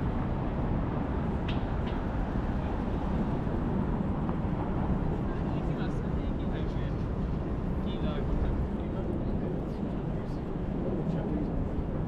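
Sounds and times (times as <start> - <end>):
traffic rumble: 0.0 - 12.0
faint voices of passersby: 2.1 - 12.0.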